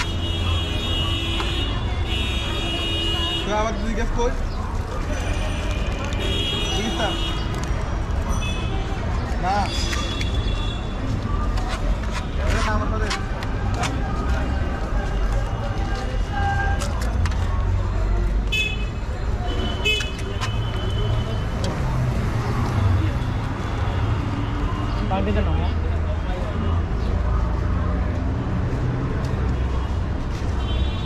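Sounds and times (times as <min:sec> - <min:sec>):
low traffic rumble: 0:00.0 - 0:31.0.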